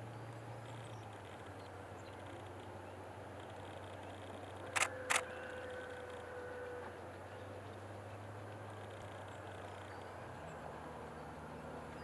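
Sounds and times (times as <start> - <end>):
sharp click: 4.8 - 5.2.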